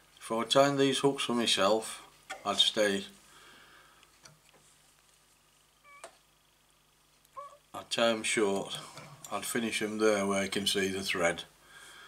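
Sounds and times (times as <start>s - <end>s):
faint squeak: 5.8s - 6.1s.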